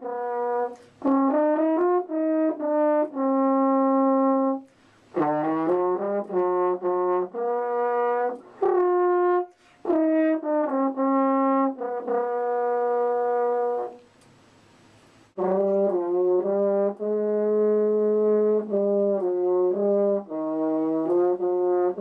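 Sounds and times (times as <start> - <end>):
french horn melody: 0.0 - 14.2, 15.3 - 22.0.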